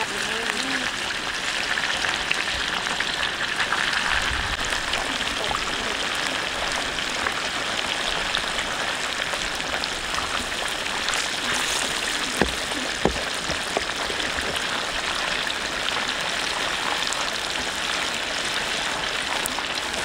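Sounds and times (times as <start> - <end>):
fish deep-frying in oil: 0.0 - 20.0
oil popping: 0.1 - 20.0.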